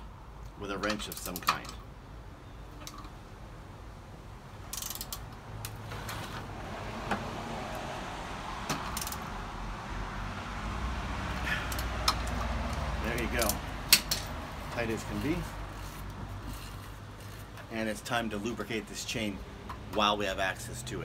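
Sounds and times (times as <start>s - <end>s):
metal tools clinking: 0.8s - 1.9s, 11.6s - 15.5s
socket ratchet clicking: 4.7s - 5.3s, 8.8s - 9.2s.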